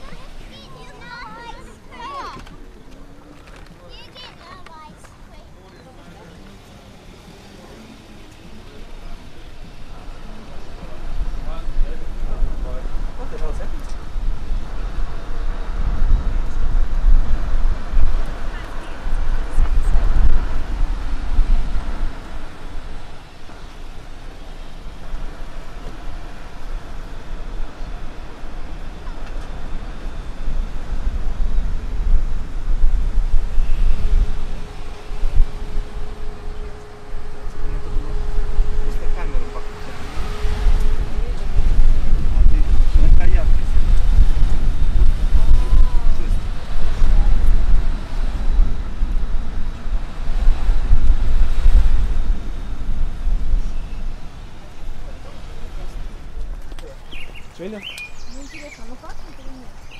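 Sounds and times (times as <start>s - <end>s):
wind buffeting microphone: 7.2s - 59.9s.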